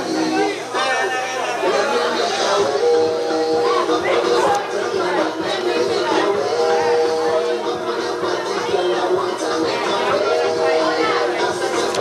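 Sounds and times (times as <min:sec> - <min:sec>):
overlapping background chatter: 0:00.0 - 0:12.0.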